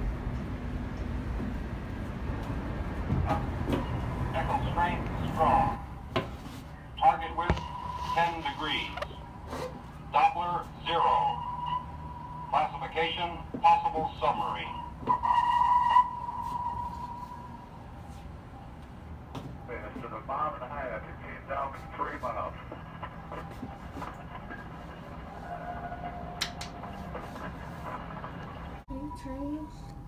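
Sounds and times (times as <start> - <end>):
steady low hum: 0.0 - 30.0
indistinct voices: 4.3 - 6.0, 6.8 - 15.0
held tone: 7.2 - 10.0.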